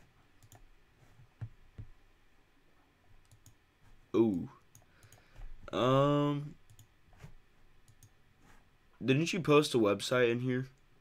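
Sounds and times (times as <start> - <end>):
faint computer mouse clicks: 3.2 - 3.6, 4.3 - 5.4, 7.8 - 8.2.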